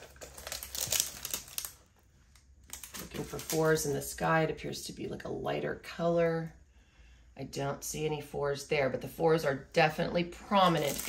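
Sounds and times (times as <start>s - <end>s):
plastic film crinkling: 0.0s - 4.0s, 10.6s - 11.0s.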